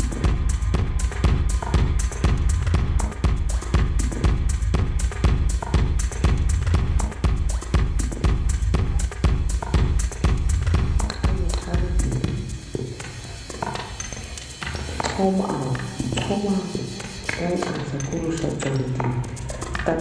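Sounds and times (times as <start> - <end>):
music with beat and heavy bass: 0.0 - 20.0.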